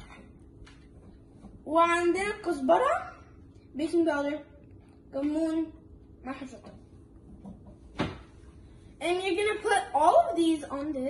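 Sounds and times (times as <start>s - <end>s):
faint kitchen room noise: 0.0s - 11.0s.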